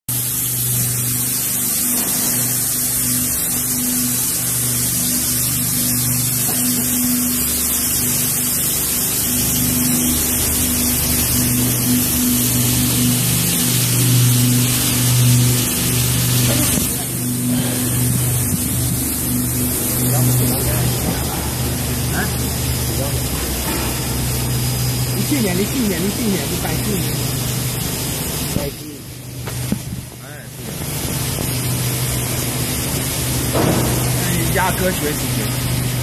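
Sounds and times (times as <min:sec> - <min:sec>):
brush machine motor hum and hiss: 0:00.1 - 0:36.0.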